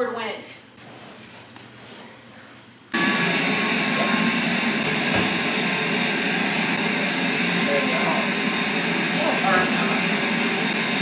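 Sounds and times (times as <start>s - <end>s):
laundry machines running: 2.9s - 11.0s.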